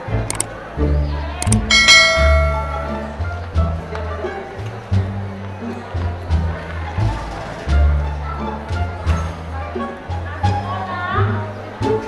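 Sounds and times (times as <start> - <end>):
quick clicks: 0.2 - 0.5, 1.4 - 1.7
bright bell chime: 1.7 - 3.2.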